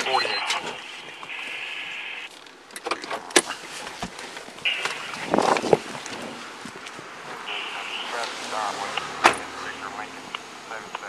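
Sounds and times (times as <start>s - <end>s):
faint voices: 7.2s - 11.0s.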